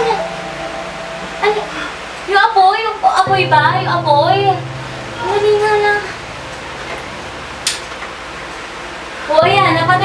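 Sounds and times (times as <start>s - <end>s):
room hiss: 0.0s - 10.0s.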